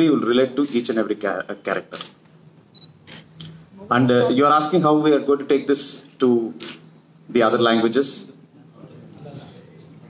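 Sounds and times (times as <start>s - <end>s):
high beep: 2.7s - 3.0s
man speaking over microphone: 3.8s - 6.6s.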